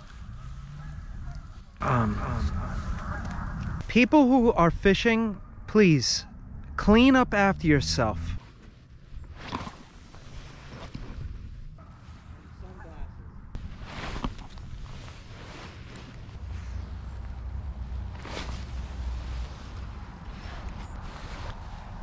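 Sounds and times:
low outdoor rumble: 0:00.0 - 0:22.0.

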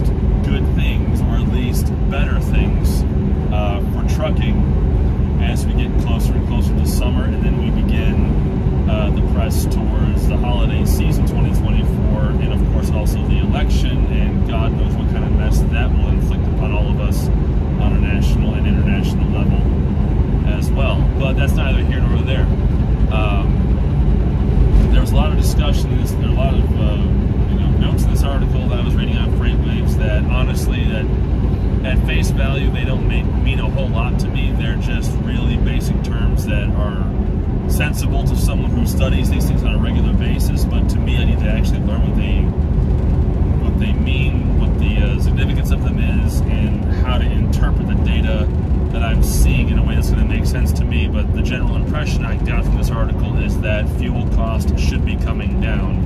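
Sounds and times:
man talking: 0:00.0 - 0:04.7, 0:05.4 - 0:19.7, 0:20.4 - 0:23.7, 0:24.7 - 0:31.2, 0:31.8 - 0:42.6, 0:43.6 - 0:56.0
road noise: 0:00.0 - 0:56.0
truck diesel engine drone: 0:00.0 - 0:56.0.

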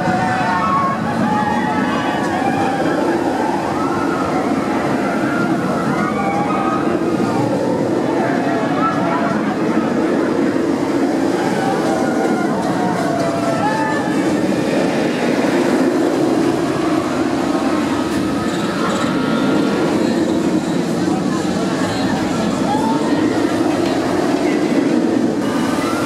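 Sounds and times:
roller coaster rumbling on track: 0:00.0 - 0:26.0.

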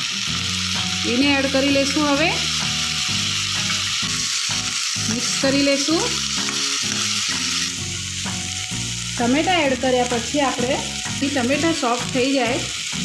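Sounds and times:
background music: 0:00.0 - 0:13.0
vegetables sizzling in hot oil: 0:00.0 - 0:13.0.

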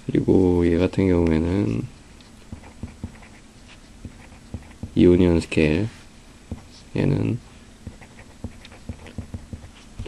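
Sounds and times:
marker scratching on paper: 0:02.4 - 0:05.0, 0:06.5 - 0:06.9, 0:07.8 - 0:10.0.

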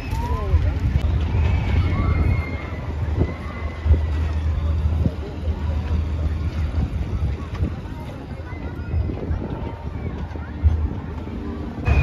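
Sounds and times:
faint crowd voices: 0:00.0 - 0:12.0
steady low rumble: 0:00.0 - 0:12.0.

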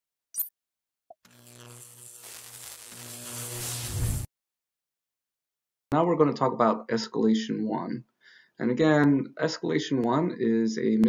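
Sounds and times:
logo riser of low tones: 0:01.3 - 0:04.3.

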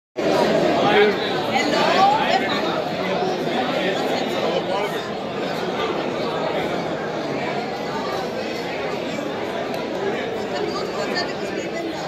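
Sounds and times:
crowd chatter: 0:00.2 - 0:12.0.

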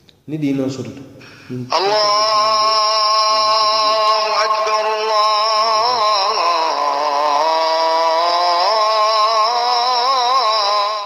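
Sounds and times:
man chanting: 0:00.3 - 0:11.0.

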